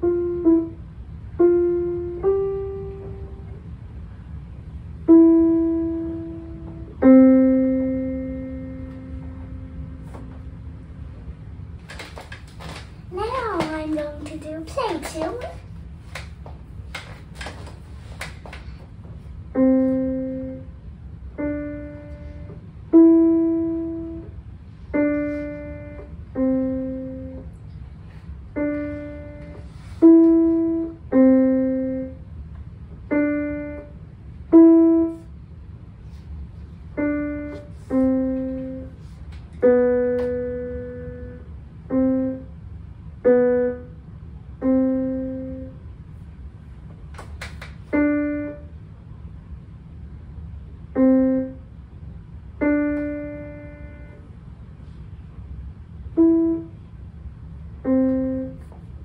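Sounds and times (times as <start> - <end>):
digital piano single notes: 39.6 - 42.5, 52.6 - 54.2, 57.8 - 58.7.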